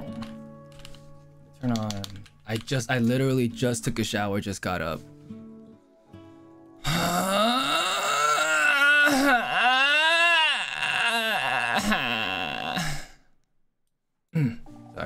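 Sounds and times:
man groaning while stretching: 6.8 - 13.2.

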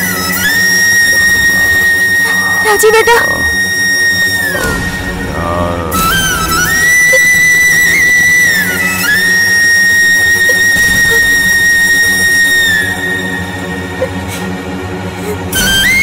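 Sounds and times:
steady low drone: 0.0 - 16.0
high whistle-like melody: 6.0 - 14.1.

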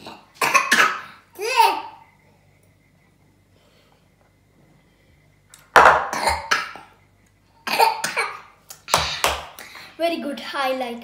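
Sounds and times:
child coughing: 0.0 - 1.9, 6.0 - 6.9, 7.6 - 9.2.

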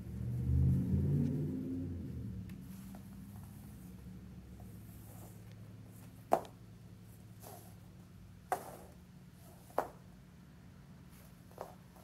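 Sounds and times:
low rumble with steady tones: 0.0 - 8.8.

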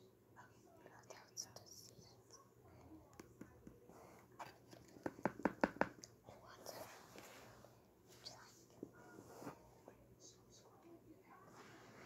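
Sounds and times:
soft whispering: 0.3 - 5.2, 6.0 - 12.0.

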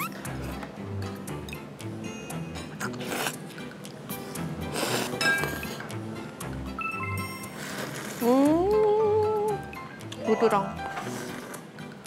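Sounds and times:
background music with steady beat: 0.0 - 7.6
noodles slurped: 2.8 - 3.6, 4.6 - 5.2, 7.6 - 8.4.

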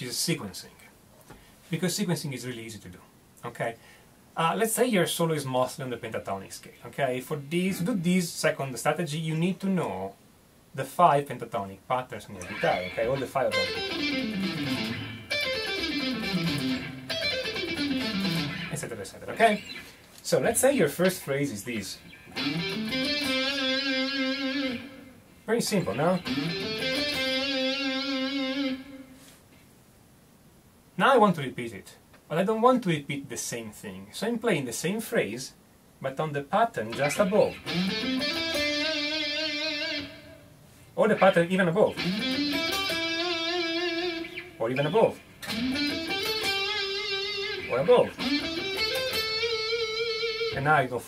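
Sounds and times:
electric guitar descending scale run: 12.4 - 18.7, 22.3 - 25.2, 26.2 - 29.2, 37.1 - 40.5, 42.0 - 44.6, 45.4 - 50.6.

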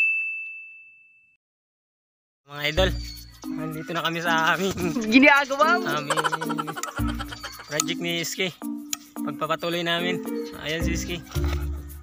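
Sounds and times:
bell-like ding: 0.0 - 1.4.

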